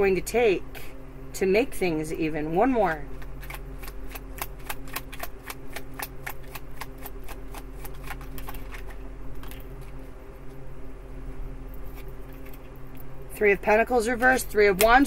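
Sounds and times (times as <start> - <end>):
cards being shuffled: 3.1 - 10.6.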